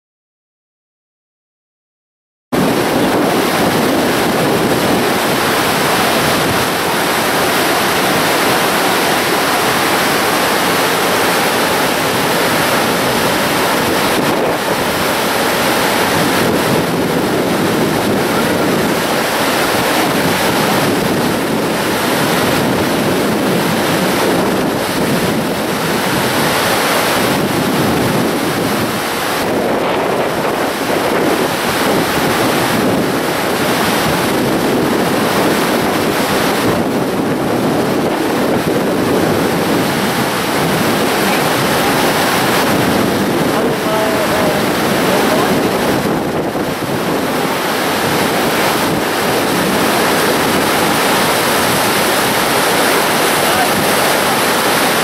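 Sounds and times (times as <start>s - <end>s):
water rushing over rocks: 2.6s - 55.0s.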